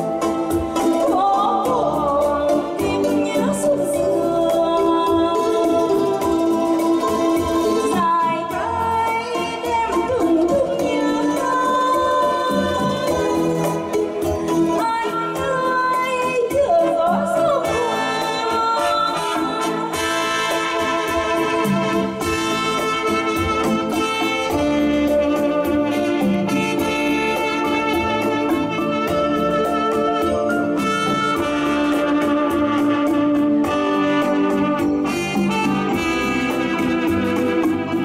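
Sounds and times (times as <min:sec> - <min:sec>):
drum and bass backing rhythm: 0:00.0 - 0:38.0
electronic keyboard ballad: 0:00.0 - 0:38.0.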